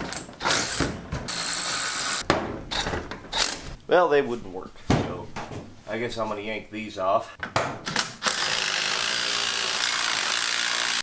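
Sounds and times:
cordless drill running: 0:00.5 - 0:02.2, 0:08.2 - 0:11.0.

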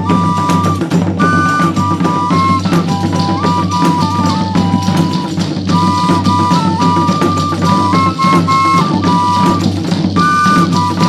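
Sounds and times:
drumming and percussion: 0:00.0 - 0:11.0
high melody: 0:00.0 - 0:11.0.

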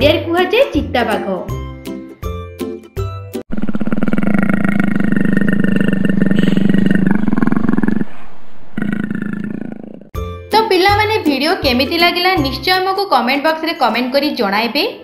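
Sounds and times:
leopard growling: 0:03.5 - 0:10.2
children's music with a beat: 0:10.2 - 0:12.8.

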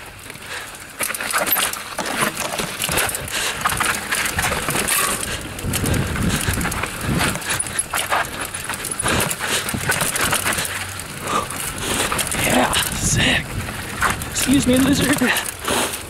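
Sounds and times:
bike knocking and rattling on rocks: 0:00.0 - 0:16.0
rolling tyre noise: 0:00.0 - 0:16.0.

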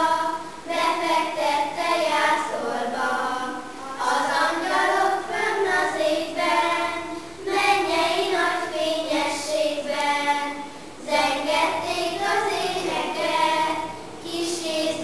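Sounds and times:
children's choir singing: 0:00.0 - 0:15.0.

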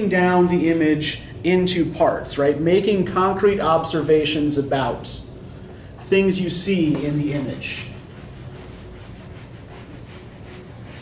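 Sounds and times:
eraser scrubbing whiteboard: 0:07.4 - 0:11.0.

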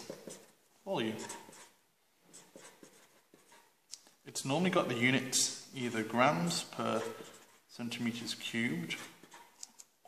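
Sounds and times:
marker pen writing on paper: 0:00.0 - 0:03.8, 0:06.4 - 0:10.0
person speaking: 0:00.0 - 0:09.8.

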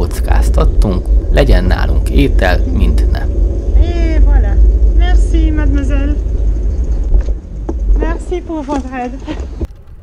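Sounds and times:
wind rumbling on microphone: 0:00.0 - 0:10.0.

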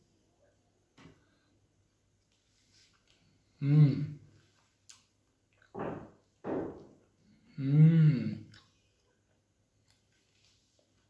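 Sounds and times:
man chewing food: 0:04.4 - 0:05.8, 0:08.5 - 0:11.0.

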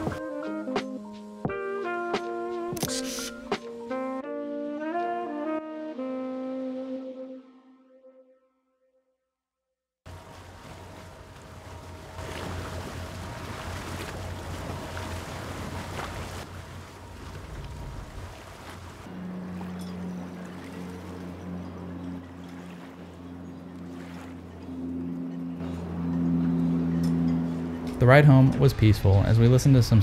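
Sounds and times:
slow ambient music: 0:00.0 - 0:08.6, 0:10.1 - 0:29.8
boat motor humming: 0:10.1 - 0:30.0
wind and water rushing past boat: 0:10.1 - 0:30.0.

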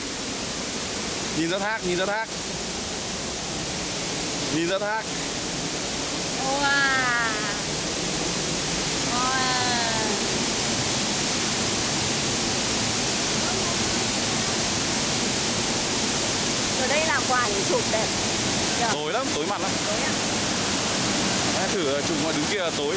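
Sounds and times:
waterfall rushing: 0:00.0 - 0:22.9.

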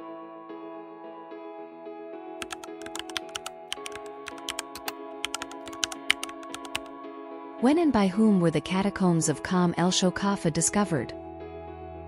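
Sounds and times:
soft background music: 0:00.0 - 0:12.0
computer keyboard typing: 0:02.4 - 0:06.9.

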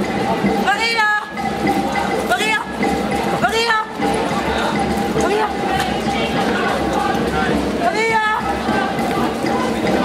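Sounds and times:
crowd of protesters voices: 0:00.0 - 0:10.0.

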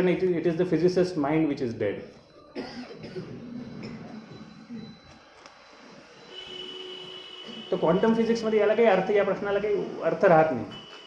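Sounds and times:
faint high whistle-like tone: 0:05.7 - 0:08.2.

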